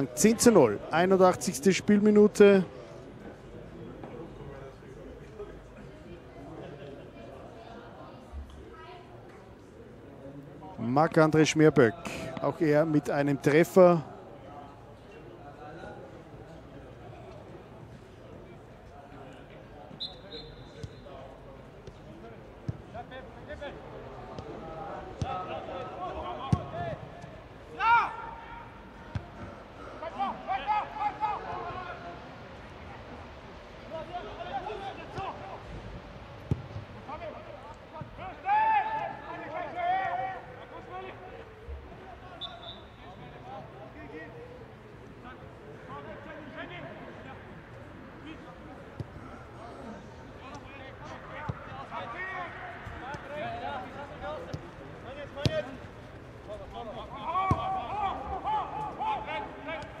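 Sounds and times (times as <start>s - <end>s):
players shouting: 24.4s - 33.0s, 33.8s - 35.8s, 37.0s - 41.2s, 49.4s - 60.0s
ball being kicked: 57.4s - 57.7s.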